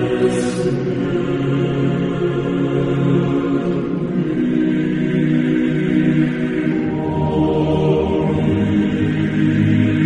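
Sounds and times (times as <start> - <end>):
choir singing long chords: 0.0 - 10.0.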